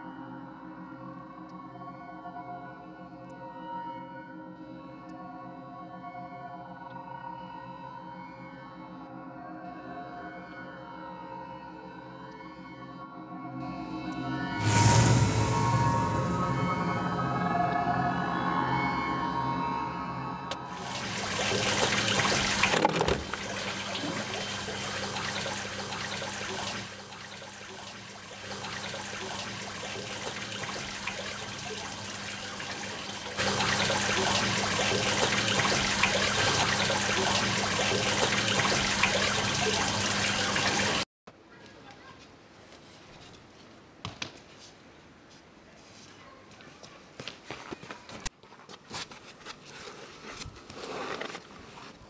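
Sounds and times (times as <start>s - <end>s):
eerie music: 0.0s - 40.6s
low hum: 13.6s - 22.8s
rushing water-like noise: 14.6s - 17.8s, 20.6s - 41.0s.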